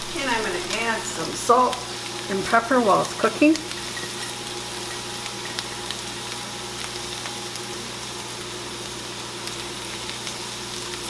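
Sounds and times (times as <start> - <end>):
potatoes sizzling in a pan: 0.0 - 11.0.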